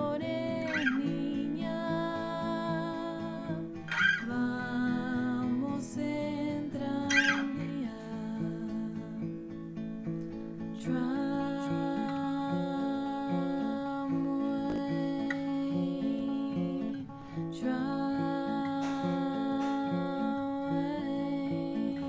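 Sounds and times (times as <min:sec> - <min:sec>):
acoustic guitar chords: 0:00.0 - 0:22.0.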